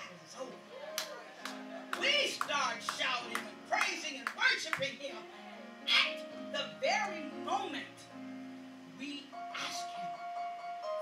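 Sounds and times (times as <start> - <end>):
held instrumental chords: 0.6 - 11.0
hand claps: 1.0 - 4.9.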